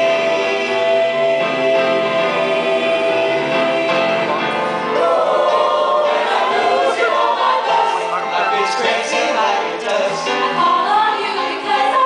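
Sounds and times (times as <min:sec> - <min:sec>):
jazz choir singing: 0:00.0 - 0:12.0.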